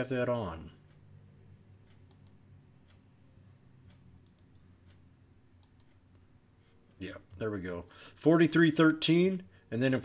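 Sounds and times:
faint low hum: 0:00.0 - 0:10.0
computer mouse clicks: 0:01.9 - 0:03.0, 0:03.9 - 0:05.0, 0:05.6 - 0:06.2.

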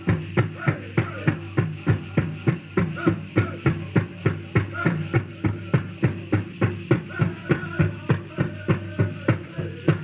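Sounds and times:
drum group singing: 0:00.0 - 0:10.0
large drum steady fast beat: 0:00.0 - 0:10.0.

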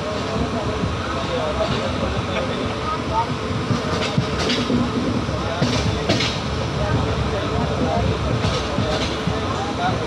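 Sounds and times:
people's voices: 0:00.0 - 0:10.0
train knocks: 0:00.0 - 0:10.0
train wheels rumbling on rails: 0:00.0 - 0:10.0.

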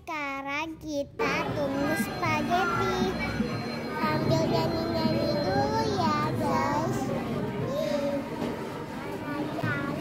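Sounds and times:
young girls talking and singing: 0:00.0 - 0:10.0.

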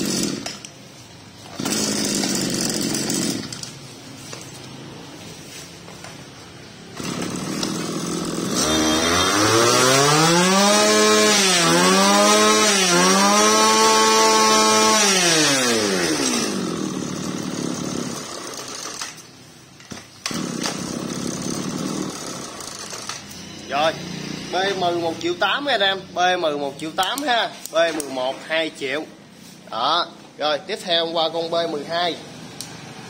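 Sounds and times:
brush cutter engine revving: 0:00.0 - 0:00.7, 0:01.4 - 0:03.8, 0:06.9 - 0:19.3, 0:20.2 - 0:25.0.

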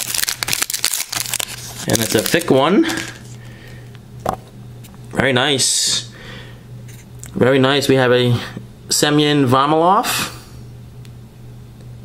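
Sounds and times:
foil wrapper tearing and crinkling: 0:00.0 - 0:03.4.

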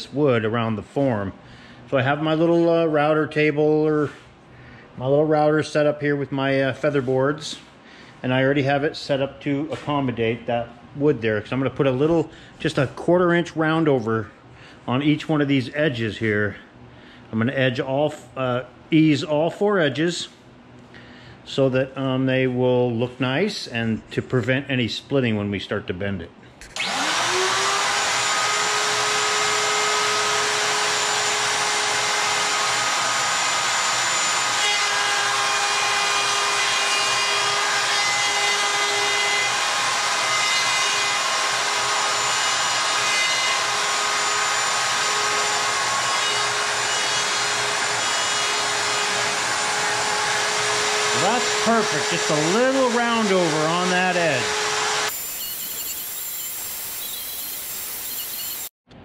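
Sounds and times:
router cutting wood whining: 0:26.6 - 0:58.7.

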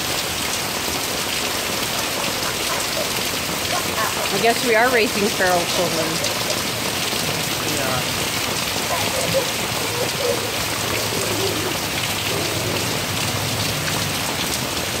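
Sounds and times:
heavy rain falling: 0:00.0 - 0:15.0.

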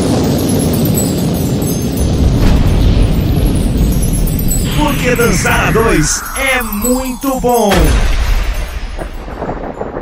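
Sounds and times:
deep rumbling boom: 0:02.0 - 0:06.7, 0:07.7 - 0:10.0.

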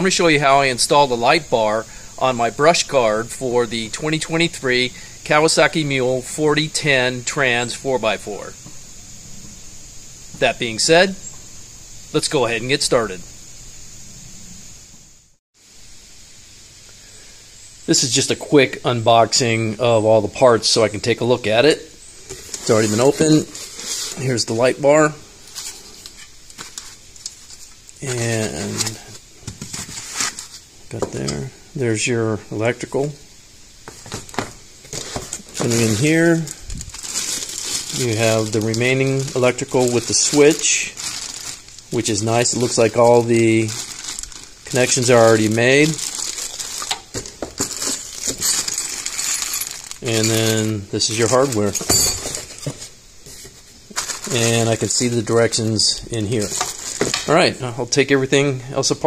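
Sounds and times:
plastic and foam rustling: 0:22.2 - 0:31.3, 0:33.9 - 0:58.1
person speaking: 0:22.6 - 0:25.2, 0:28.0 - 0:29.2, 0:35.5 - 0:46.7, 0:50.0 - 0:51.9, 0:54.2 - 0:59.0.

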